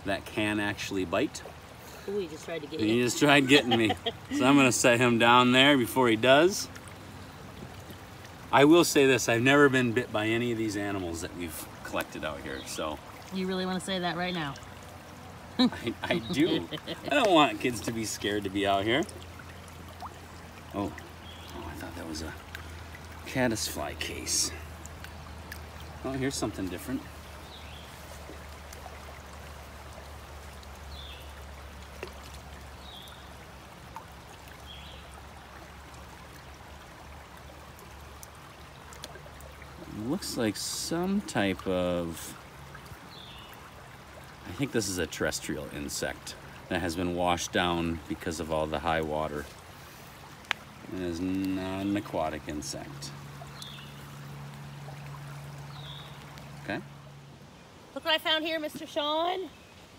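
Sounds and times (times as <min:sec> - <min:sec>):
creek rushing: 0:00.0 - 0:59.9
faint clicks: 0:50.4 - 0:50.7.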